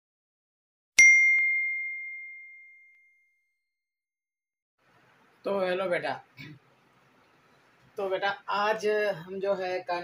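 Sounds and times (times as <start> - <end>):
bell-like ding notification: 1.0 - 3.2.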